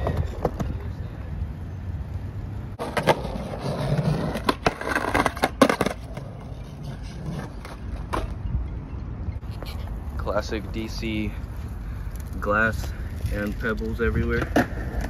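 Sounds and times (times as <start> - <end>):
skateboard wheels rumbling: 0.0 - 8.7, 11.3 - 15.0
skateboard clacks and knocks: 2.8 - 6.6.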